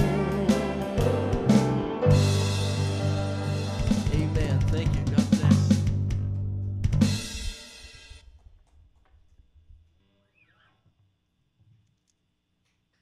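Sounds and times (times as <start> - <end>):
gospel band playing: 0.0 - 6.1
drum hits: 0.0 - 7.7.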